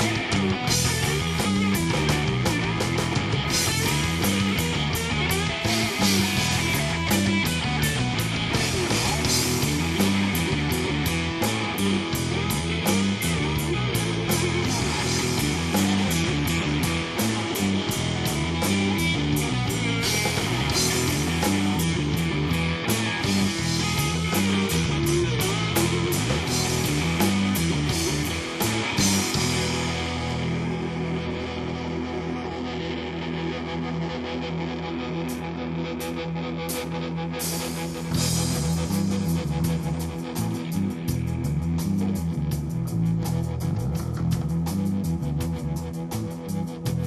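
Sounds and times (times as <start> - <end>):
rock band playing: 0.0 - 47.0.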